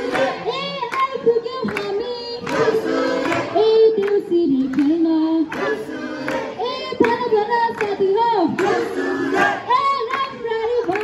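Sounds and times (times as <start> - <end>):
group chanting in unison: 0.0 - 0.7, 2.4 - 3.6, 5.4 - 7.0, 8.5 - 9.8.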